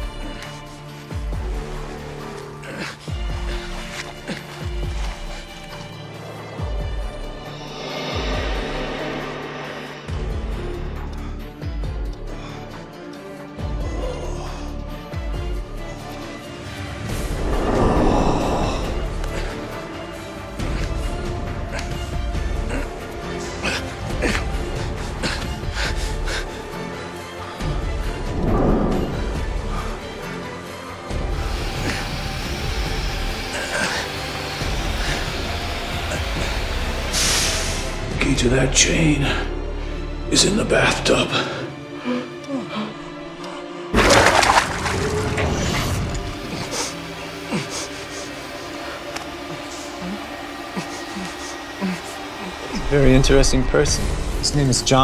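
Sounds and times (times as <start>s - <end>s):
horror film score: 0.0s - 55.0s
low rumble: 17.0s - 19.5s, 28.0s - 30.0s.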